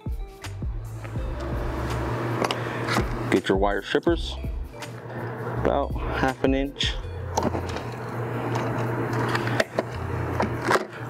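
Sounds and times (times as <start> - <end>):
steady low hum: 0.6 - 11.0.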